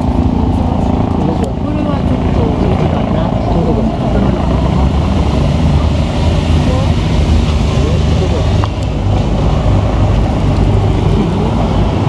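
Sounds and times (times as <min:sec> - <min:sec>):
cars passing: 0:00.0 - 0:12.0
motorcycle engines passing: 0:00.0 - 0:12.0
onlookers talking: 0:00.0 - 0:12.0.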